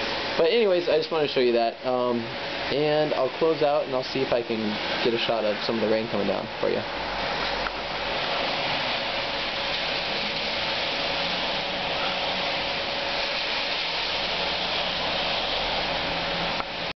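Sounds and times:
heavy rain on a street: 0.0s - 17.0s.

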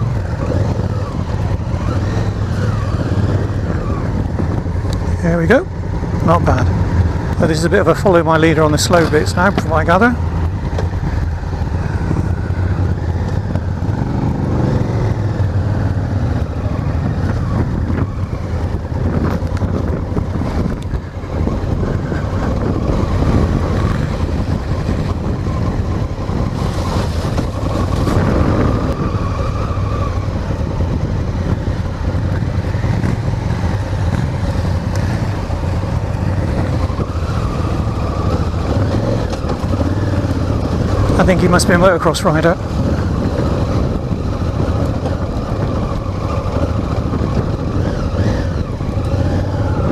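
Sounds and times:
motorcycle engine running: 0.0s - 49.9s.

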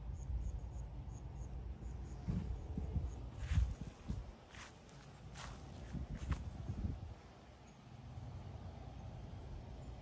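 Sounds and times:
footsteps on grass: 3.3s - 6.9s.

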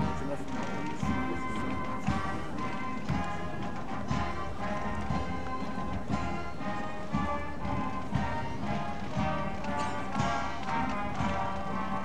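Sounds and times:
horse hooves clip-clopping: 0.0s - 12.0s
military band music: 0.0s - 12.0s.

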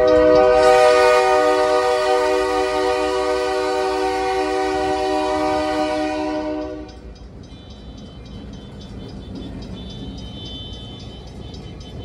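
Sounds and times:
locomotive air horn blast: 0.0s - 7.0s
locomotive rumble passing: 0.0s - 12.0s.

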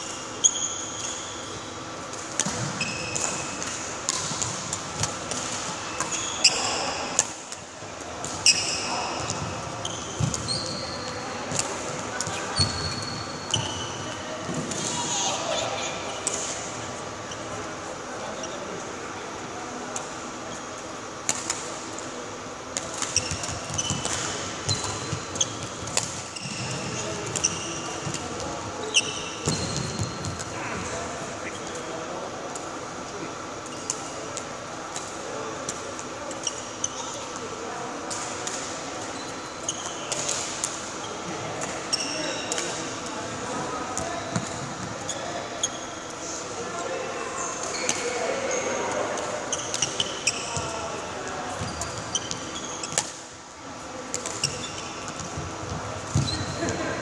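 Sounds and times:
shoes squeaking on court: 0.0s - 7.2s, 8.2s - 17.6s, 22.8s - 31.8s, 36.3s - 37.5s, 38.2s - 46.2s, 47.3s - 53.3s, 54.1s - 57.0s.

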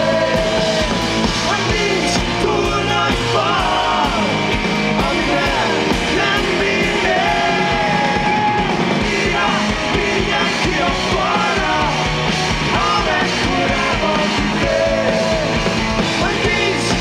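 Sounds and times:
drums: 0.0s - 17.0s
electric guitar: 0.0s - 17.0s
male singing: 1.4s - 4.4s, 5.0s - 8.4s, 9.0s - 12.1s, 12.7s - 15.5s, 16.2s - 17.0s.

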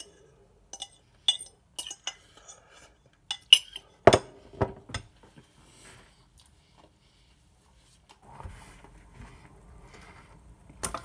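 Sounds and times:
metal utensil clinking on bowl: 0.0s - 2.7s, 3.3s - 4.0s.

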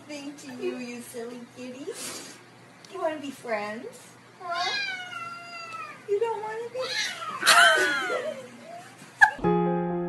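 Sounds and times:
cat meowing: 4.4s - 6.1s.

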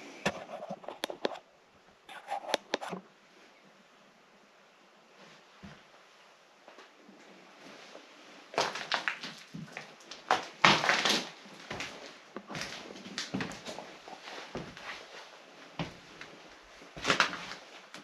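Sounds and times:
footsteps crunching on debris: 8.5s - 15.2s, 15.8s - 18.0s.

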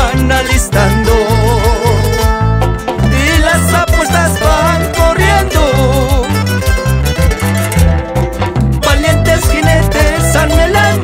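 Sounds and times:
folk band music: 0.0s - 11.0s
plucked strings: 0.0s - 11.0s
steady bass line: 0.0s - 11.0s.

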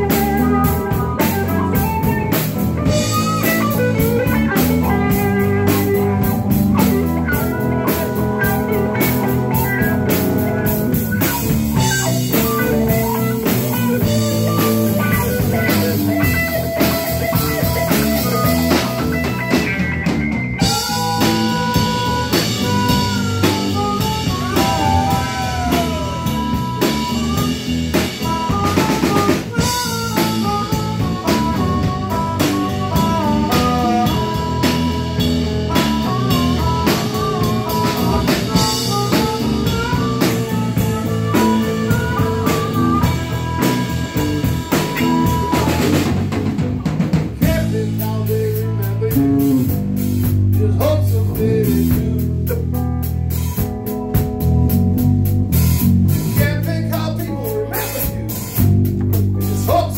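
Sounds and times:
harmonica bending notes: 0.0s - 59.8s
blues-rock band playing: 0.0s - 59.9s.

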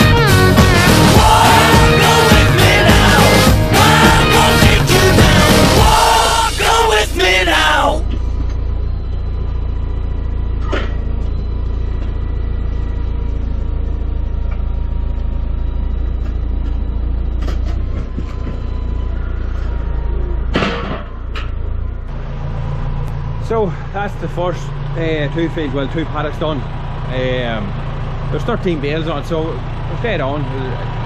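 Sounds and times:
tractor engine running: 0.0s - 31.0s.

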